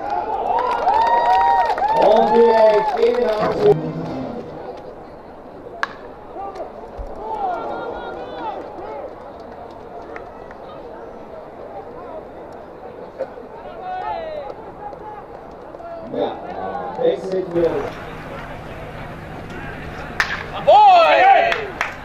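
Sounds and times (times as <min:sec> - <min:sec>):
indistinct crowd voices: 0:01.9 - 0:22.0
bat cracking ball: 0:17.7 - 0:22.0.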